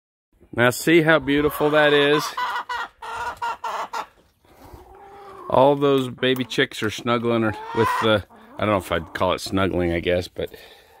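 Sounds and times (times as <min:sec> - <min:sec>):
chickens clucking: 0:00.6 - 0:11.0.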